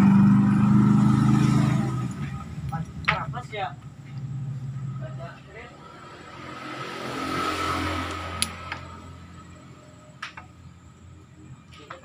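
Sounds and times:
vehicle engine: 0.0s - 12.0s
sharp metallic click: 8.1s - 8.9s.

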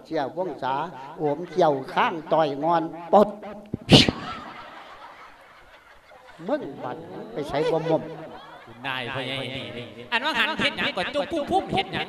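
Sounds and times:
faint background noise: 0.0s - 12.0s
man laughing into microphone: 1.2s - 9.5s.

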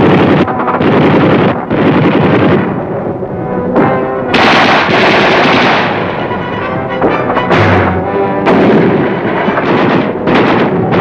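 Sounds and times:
continuous gunfire: 0.0s - 2.9s, 3.8s - 11.0s
heavy artillery blast: 0.0s - 11.0s.

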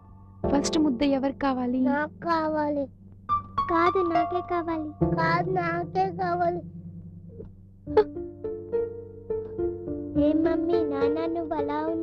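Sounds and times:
instrumental backing music: 0.0s - 12.0s.

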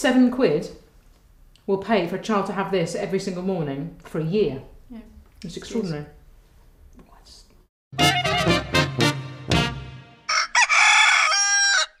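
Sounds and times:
rooster crowing: 10.3s - 12.0s.

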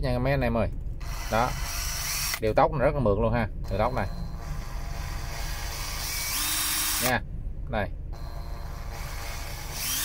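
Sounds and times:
cordless drill motor whining: 1.0s - 2.4s, 4.4s - 7.1s, 8.2s - 10.0s.

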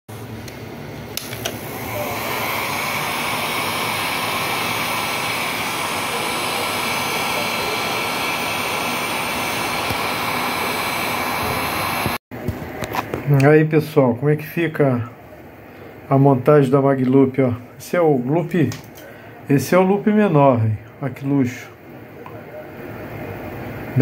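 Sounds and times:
heat gun switch clicks: 0.5s - 1.6s
heat gun blowing hot air: 1.1s - 12.2s.

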